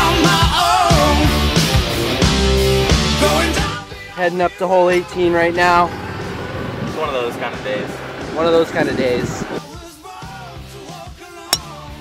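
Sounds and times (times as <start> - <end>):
hip-hop music with sung vocals: 0.0 - 1.8, 3.0 - 6.0, 9.5 - 12.0.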